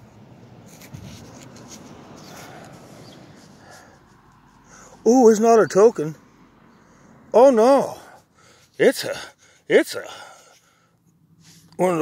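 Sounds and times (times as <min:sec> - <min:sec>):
dirt scraping: 0:00.0 - 0:04.9.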